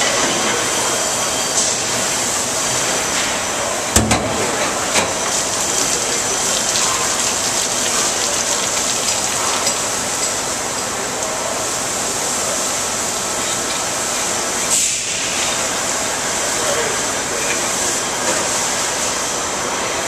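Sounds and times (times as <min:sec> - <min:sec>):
liquid spraying and splashing: 0:04.4 - 0:19.3.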